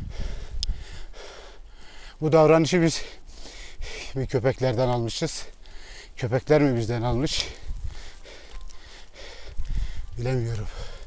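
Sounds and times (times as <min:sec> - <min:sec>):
wind rumble on microphone: 0:00.0 - 0:01.1, 0:06.8 - 0:11.0
person breathing hard: 0:00.0 - 0:02.2, 0:03.0 - 0:04.2, 0:05.6 - 0:06.2, 0:07.8 - 0:11.0.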